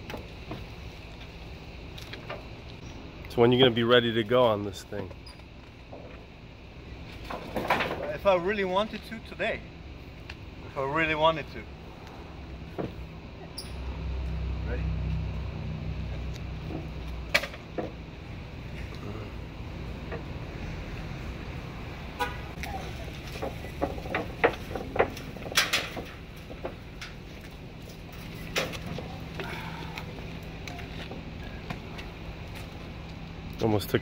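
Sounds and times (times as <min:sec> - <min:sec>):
motorcycle rattling down metal ramp: 0:23.2 - 0:27.3.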